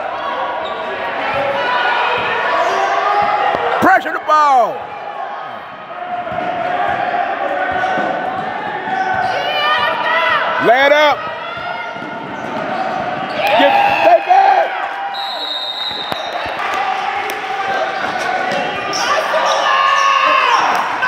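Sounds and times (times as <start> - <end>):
people shouting in a hall: 0.0 - 21.0.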